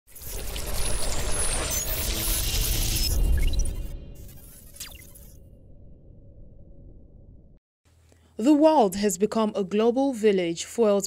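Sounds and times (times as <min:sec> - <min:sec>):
deep rumble: 0:05.2 - 0:07.6.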